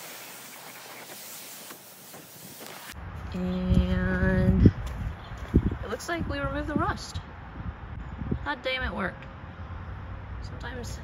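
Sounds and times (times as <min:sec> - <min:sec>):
pressure washer spray on plastic mat: 0:00.0 - 0:03.0.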